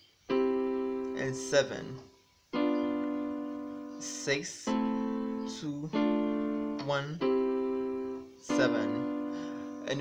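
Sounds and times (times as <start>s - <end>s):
electronic keyboard piano chord: 0.2s - 10.0s.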